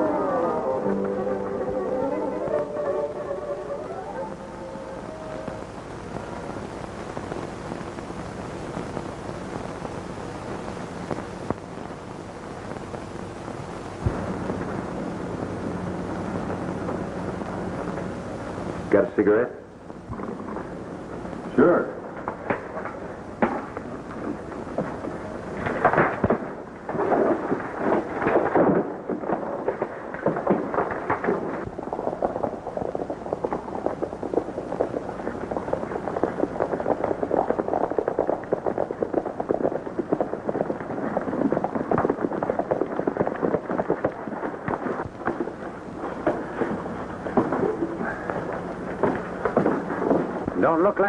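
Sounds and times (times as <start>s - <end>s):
horses galloping: 21.6s - 51.0s.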